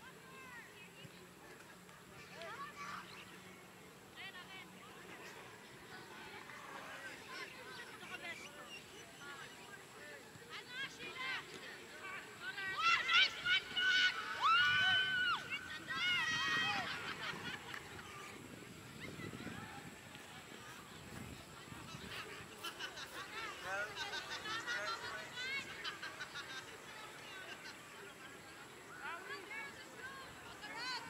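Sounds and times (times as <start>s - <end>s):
distant voices and calls: 0.1s - 31.0s.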